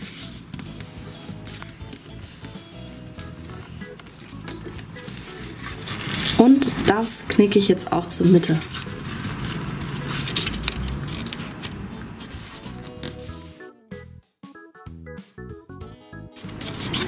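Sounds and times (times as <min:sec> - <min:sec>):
cardboard being folded and creased: 0:00.0 - 0:07.4, 0:08.1 - 0:13.5, 0:16.4 - 0:17.0
cardboard rustling and scraping: 0:00.0 - 0:13.6, 0:16.4 - 0:17.0
background music with stepping notes: 0:00.0 - 0:17.0.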